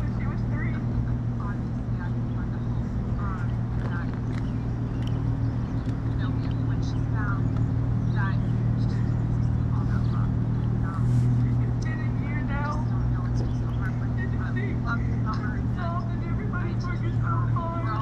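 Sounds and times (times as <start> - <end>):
people talking: 0.0 - 4.5, 6.0 - 18.0
engine running: 0.0 - 18.0.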